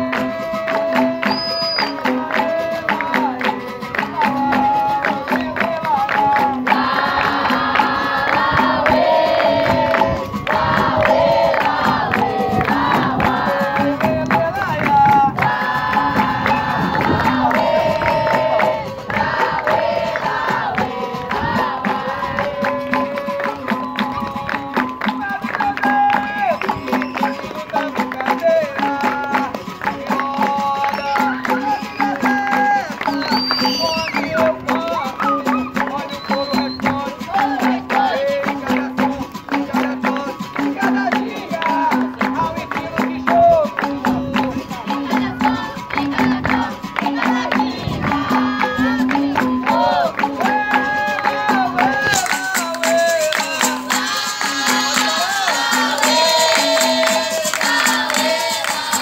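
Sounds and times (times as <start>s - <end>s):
call-and-response singing: 0.0s - 59.0s
hand clapping: 0.0s - 59.0s
percussion beat: 0.0s - 59.0s.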